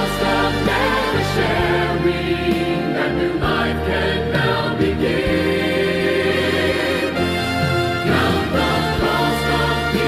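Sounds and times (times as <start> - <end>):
choir singing: 0.0 - 10.0
sustained instrumental accompaniment: 0.0 - 10.0.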